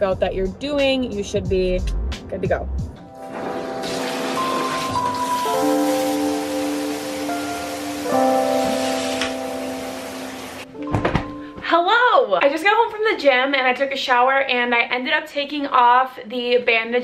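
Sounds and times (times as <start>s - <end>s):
background music of held notes: 1.3s - 12.5s
shower water spraying into bathtub: 3.2s - 10.7s.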